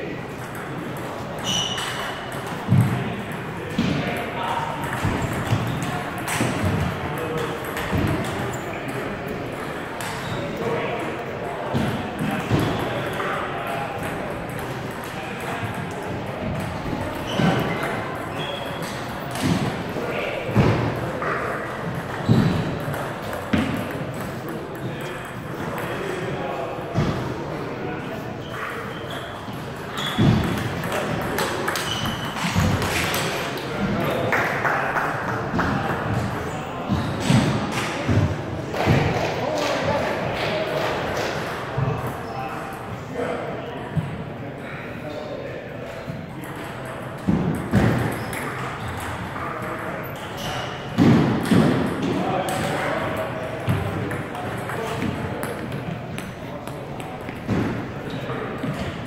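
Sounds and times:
voices in background: 0.0 - 59.0
table tennis ball hitting paddles: 0.3 - 10.2, 11.7 - 26.3, 29.5 - 42.2, 46.4 - 50.3, 51.0 - 59.0.

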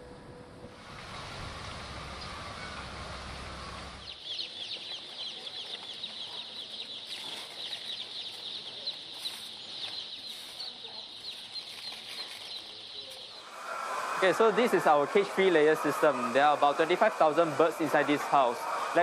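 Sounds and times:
chicks peeping: 3.9 - 19.0.

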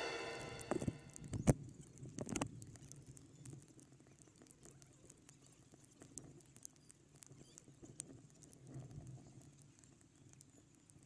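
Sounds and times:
raindrops tapping on camera: 1.3 - 11.0.

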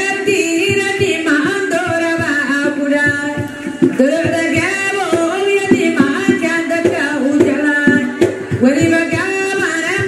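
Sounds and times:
drum strokes: 0.0 - 10.0
woman singing into a microphone: 0.0 - 10.0.

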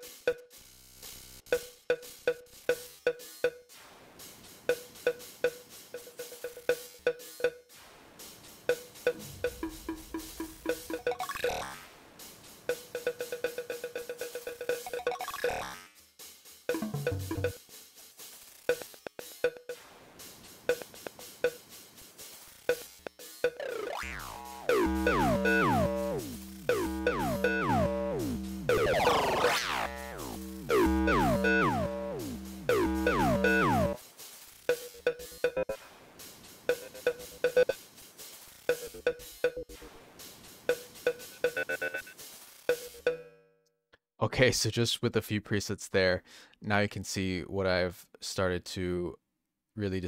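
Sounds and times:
drum machine beat: 8.5 - 11.4, 16.7 - 17.7, 18.7 - 42.0
delay echoes of pitched tones: 23.7 - 34.0.

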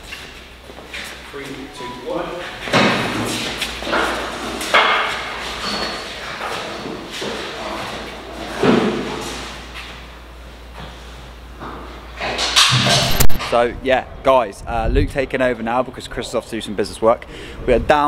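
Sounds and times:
heavy thumps and knocks echoing: 2.6 - 5.5.

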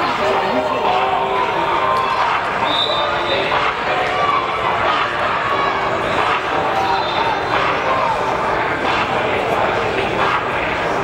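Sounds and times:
overlapping voices echoing: 0.0 - 11.0
steady background noise: 0.0 - 11.0.

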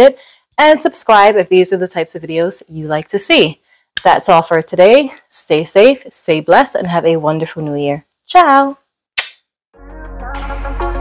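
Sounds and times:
kiss smack: 9.2 - 9.5
electronic music with low bass: 9.8 - 11.0.

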